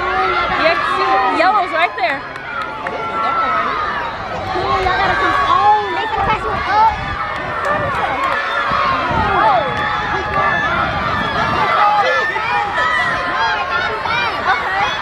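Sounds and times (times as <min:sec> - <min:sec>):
spectators shouting and cheering: 0:00.0 - 0:15.0.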